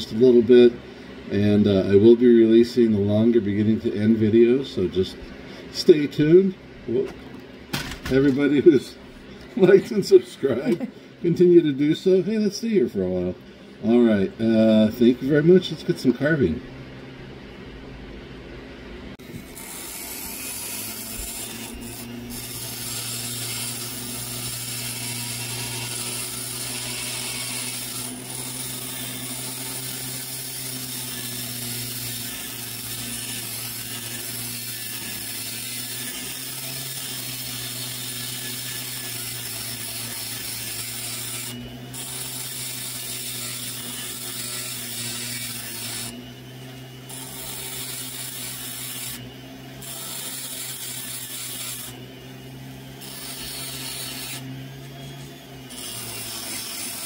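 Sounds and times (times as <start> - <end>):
rotary tool grinding stone: 19.2 - 57.0.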